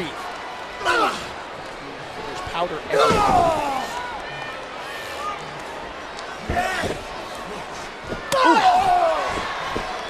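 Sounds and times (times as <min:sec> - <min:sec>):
loud drawn-out yell: 0:08.3 - 0:09.6.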